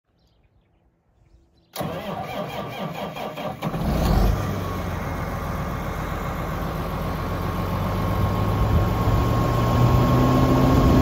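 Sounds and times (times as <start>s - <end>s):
diesel engine cranking on starter: 1.8s - 10.2s.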